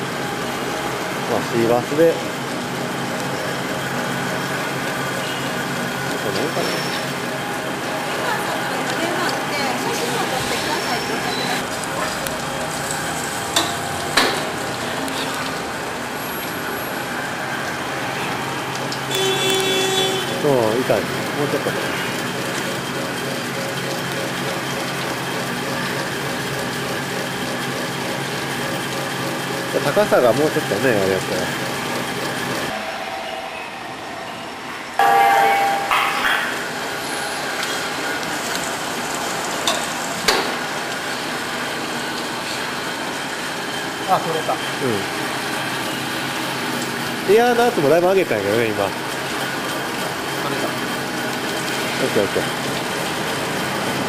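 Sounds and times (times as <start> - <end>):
air compressor motor humming: 0.0 - 32.8.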